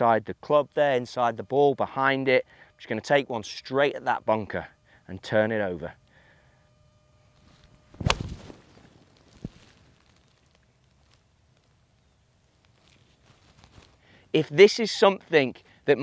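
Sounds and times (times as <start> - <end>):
golf club striking ball: 8.0 - 8.5.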